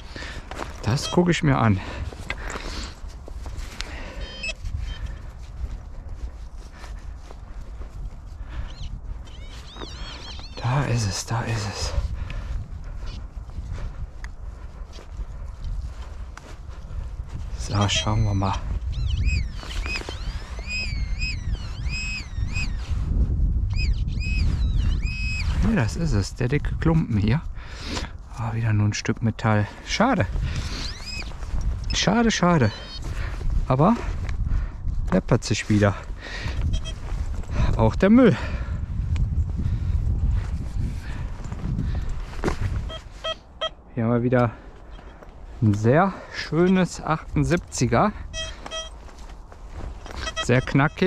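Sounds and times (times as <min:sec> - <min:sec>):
pinpointer beeping: 0:17.8 - 0:18.2, 0:36.7 - 0:37.0, 0:48.3 - 0:49.0, 0:50.2 - 0:51.0
boots treading on dry soil: 0:44.3 - 0:51.0.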